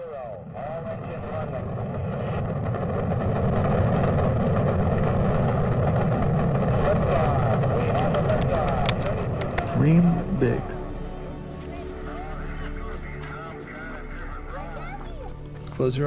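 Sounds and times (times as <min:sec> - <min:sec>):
deep rocket engine roar: 0:00.0 - 0:11.3
sharp crackling pops: 0:07.8 - 0:09.8.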